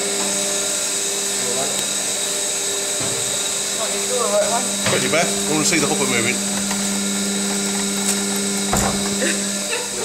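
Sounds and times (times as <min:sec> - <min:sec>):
machinery motor and fan drone: 0:00.0 - 0:10.0.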